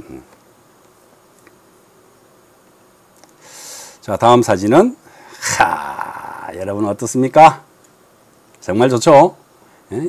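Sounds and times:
faint steady hum: 0:00.0 - 0:10.0
man murmuring mm: 0:05.4 - 0:06.6.

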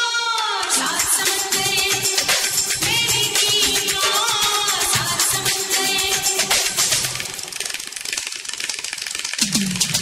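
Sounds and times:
rattling hand percussion: 0:00.6 - 0:10.0.

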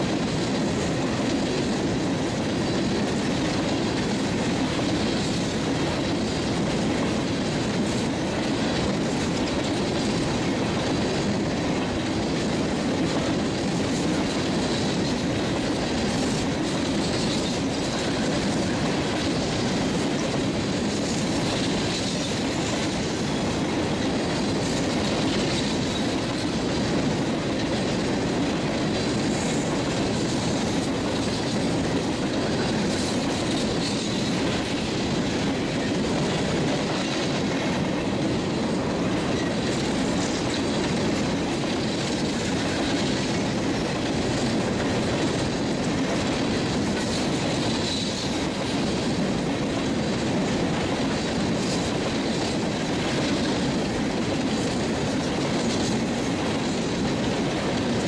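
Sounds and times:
train wheels rumbling on rails: 0:00.0 - 0:58.0.

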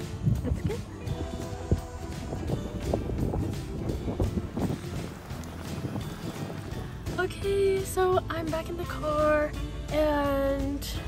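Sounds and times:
wind rumbling on microphone: 0:00.0 - 0:09.2
background music: 0:00.0 - 0:11.0.

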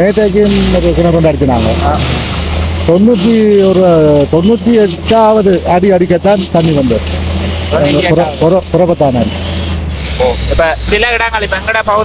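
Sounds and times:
man talking: 0:00.0 - 0:02.2, 0:02.8 - 0:07.1, 0:07.7 - 0:09.4, 0:10.2 - 0:12.0.

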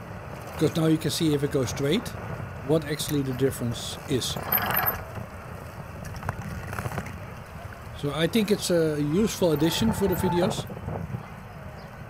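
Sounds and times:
bicycle riding noise: 0:00.0 - 0:12.0
wind rumble on microphone: 0:00.0 - 0:12.0.

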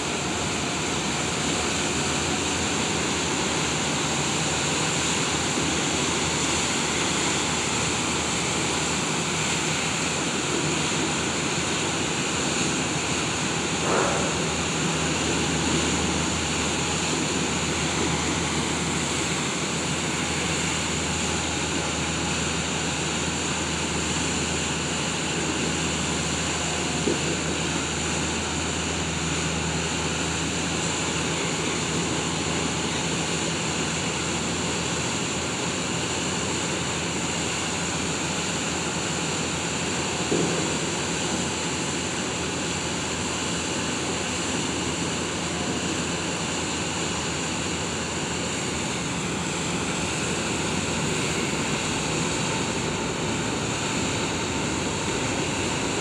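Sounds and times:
ferry engine rumble: 0:00.0 - 0:56.0
propeller wash churning: 0:00.0 - 0:56.0.

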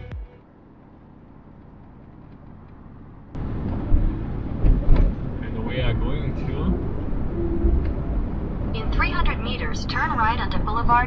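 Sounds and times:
car road rumble with tyre hiss: 0:00.4 - 0:11.0.

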